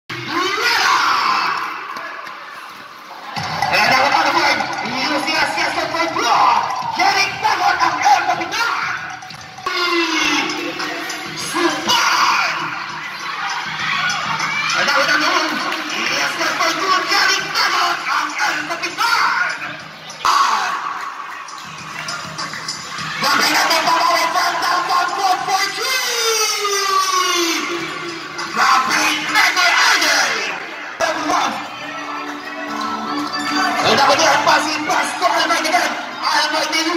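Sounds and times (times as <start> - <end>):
spectators shouting and cheering: 0.1 - 36.9.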